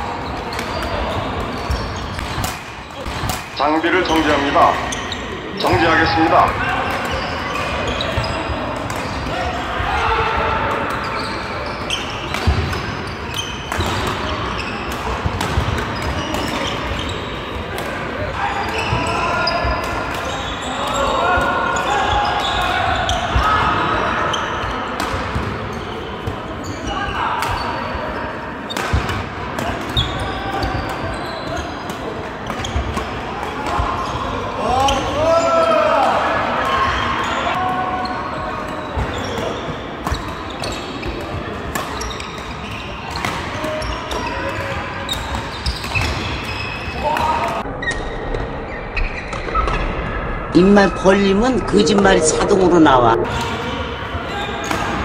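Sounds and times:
shoes squeaking on wooden floor: 11.0s - 14.9s, 30.0s - 31.8s, 38.8s - 47.2s
indistinct voices: 50.6s - 53.6s.

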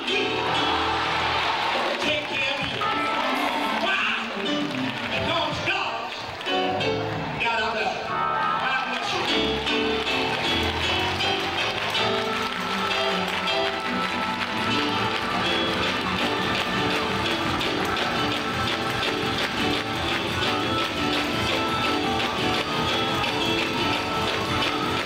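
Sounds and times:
up-tempo gospel music: 0.0s - 25.0s
hands clapping: 1.3s - 7.4s, 8.6s - 25.0s
keyboard chords: 2.6s - 5.6s, 6.3s - 25.0s.

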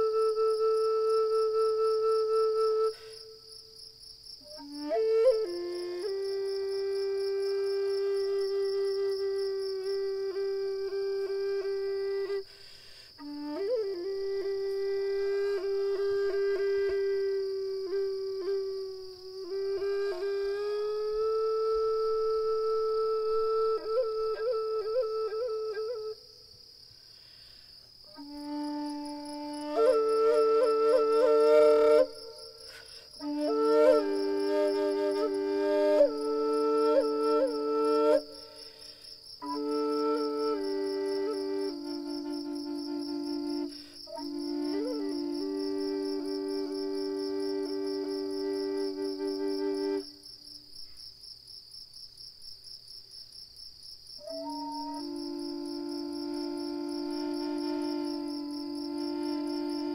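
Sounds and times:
flute holding long note: 0.0s - 3.4s, 4.4s - 12.6s, 13.2s - 26.3s, 28.1s - 50.2s, 54.2s - 59.9s
crickets chirping: 0.0s - 59.9s.

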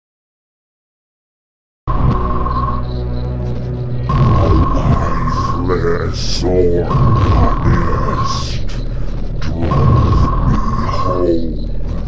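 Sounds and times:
deep droning hum: 1.9s - 12.0s.

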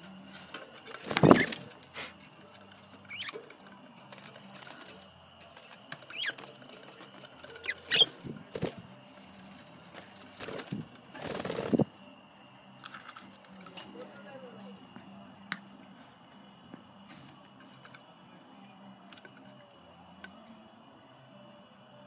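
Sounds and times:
loud rustling: 0.0s - 11.9s
budgerigars chirping: 6.1s - 6.4s.

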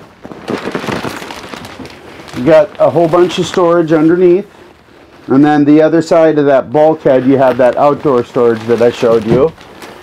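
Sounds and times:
bed platform and bedding rustling: 6.8s - 10.0s.

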